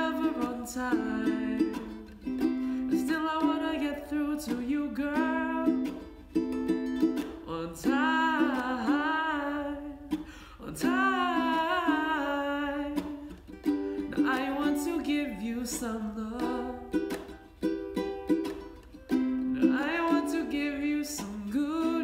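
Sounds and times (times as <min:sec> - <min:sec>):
man singing without words: 0:00.0 - 0:02.2, 0:02.8 - 0:06.1, 0:07.4 - 0:13.4, 0:14.0 - 0:17.2, 0:19.4 - 0:22.0
ukulele strummed: 0:00.0 - 0:22.0.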